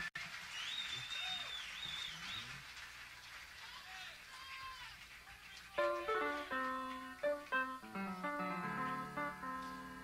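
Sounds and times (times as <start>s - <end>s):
guitar picking single notes: 5.9s - 10.0s.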